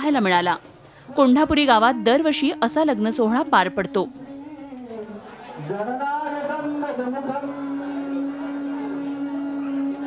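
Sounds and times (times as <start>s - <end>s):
crowd chatter: 0.0s - 10.0s
narration: 0.0s - 10.0s
man's voice: 4.2s - 10.0s.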